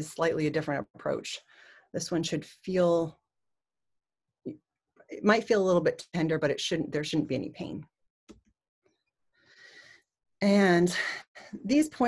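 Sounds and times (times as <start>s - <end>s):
woman's soft in-breath: 1.4s - 1.9s, 9.4s - 10.1s.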